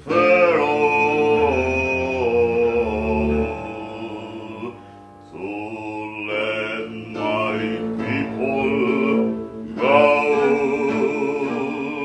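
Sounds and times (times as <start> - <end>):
man singing chant-like notes: 0.0 - 12.0.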